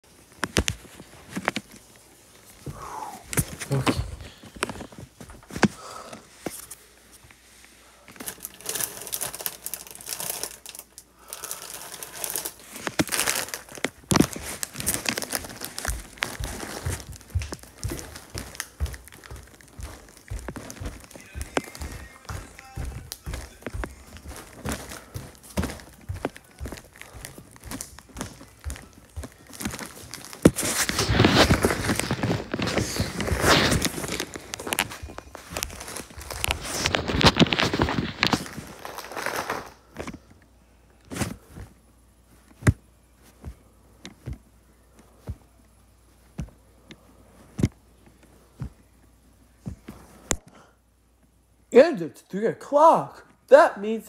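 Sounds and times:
rustling and crinkling: 0.1s - 50.4s.

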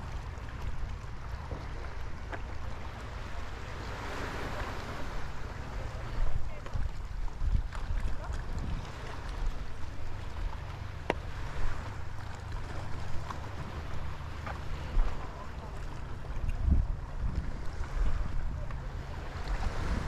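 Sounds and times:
waves lapping on rocky shore: 0.0s - 20.0s
wind buffeting microphone: 0.0s - 20.0s.

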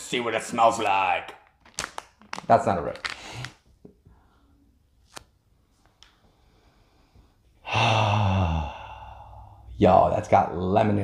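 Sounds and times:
pouch clicks and crinkles: 1.5s - 3.6s
man sighing: 7.6s - 9.7s.

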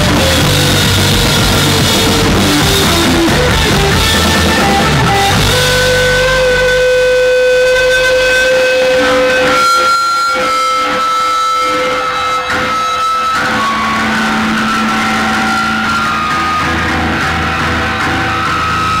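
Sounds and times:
electric guitars ringing: 0.0s - 19.0s
live rock band playing: 0.0s - 19.0s.

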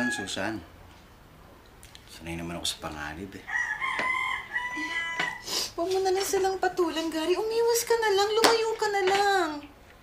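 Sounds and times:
rooster crowing: 0.0s - 0.7s, 3.4s - 5.6s.

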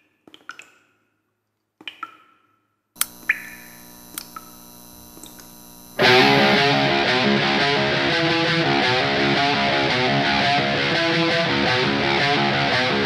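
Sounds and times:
click: 3.0s - 5.6s
sharp ticks: 3.0s - 6.1s
rock band with distorted guitar: 6.0s - 13.0s.

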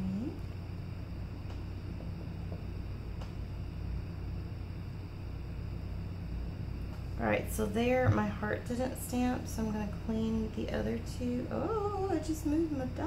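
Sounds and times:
low electrical hum and hiss: 0.0s - 13.0s.

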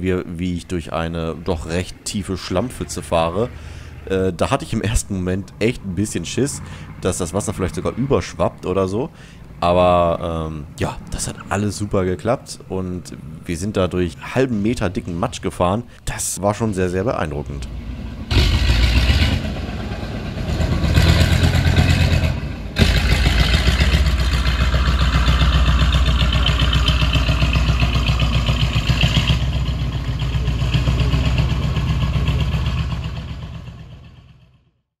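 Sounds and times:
diesel engine running: 0.0s - 14.1s, 17.3s - 34.7s.

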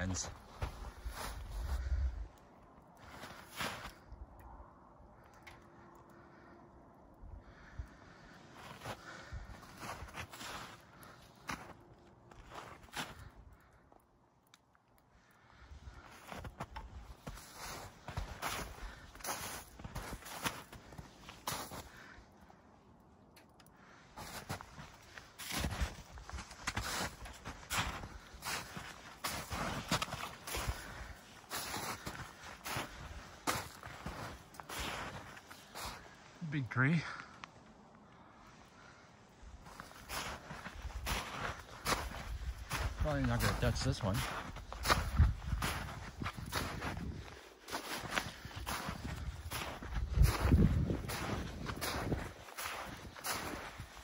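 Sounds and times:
footsteps in snow: 0.0s - 1.9s, 3.0s - 4.0s, 8.6s - 13.3s, 16.1s - 22.1s, 24.2s - 37.3s, 39.4s - 54.0s.

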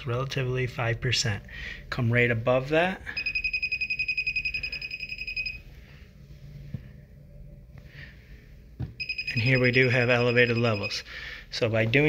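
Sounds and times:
moisture meter beeping rapidly: 3.2s - 5.6s, 9.0s - 11.0s.

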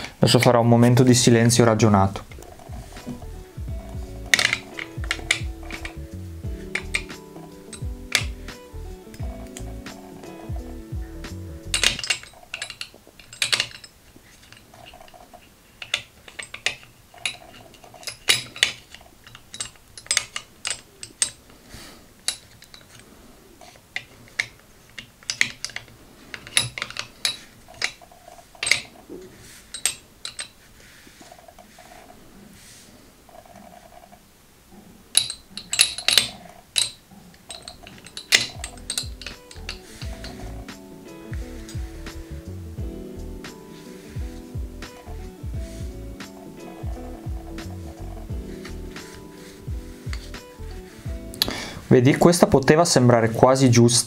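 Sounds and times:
metal balls clicking together: 2.1s - 21.6s, 22.2s - 30.6s, 35.1s - 51.6s.

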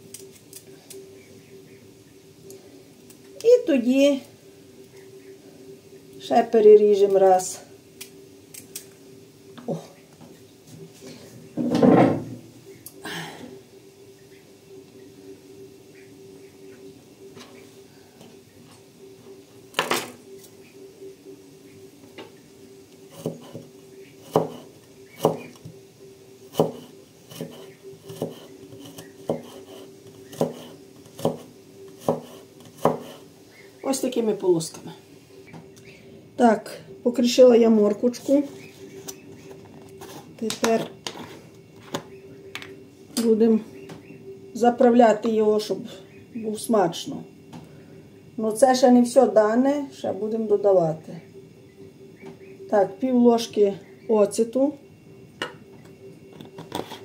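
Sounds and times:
steady low hum: 0.0s - 57.0s
knife chopping on wooden board: 24.3s - 24.6s, 26.6s - 29.7s, 30.3s - 33.2s.

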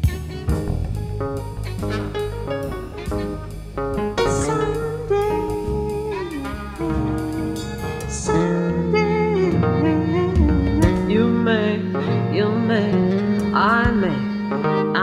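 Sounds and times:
piano bass and guitar accompaniment: 0.0s - 15.0s
trumpet melody with sliding notes: 0.0s - 15.0s.

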